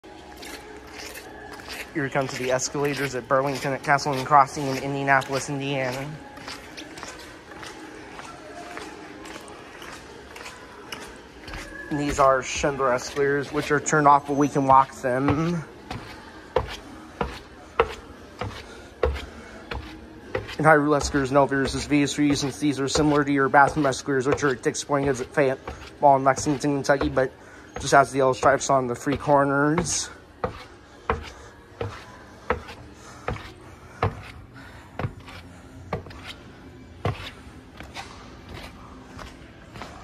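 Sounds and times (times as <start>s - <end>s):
footsteps on metal steps: 2.0s - 34.4s, 35.0s - 36.4s, 37.0s - 40.0s.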